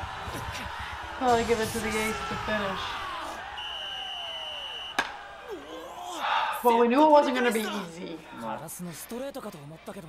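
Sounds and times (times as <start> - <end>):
referee's whistle: 3.5 - 5.1.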